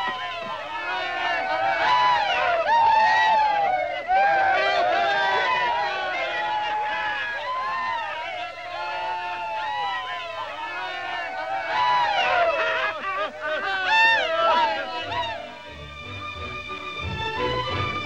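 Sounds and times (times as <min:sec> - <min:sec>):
men shouting and cheering: 0:00.0 - 0:16.1.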